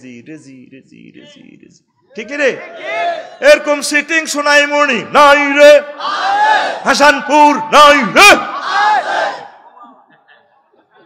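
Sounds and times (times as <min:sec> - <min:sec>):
man shouting through loudspeakers: 0:01.2 - 0:09.4.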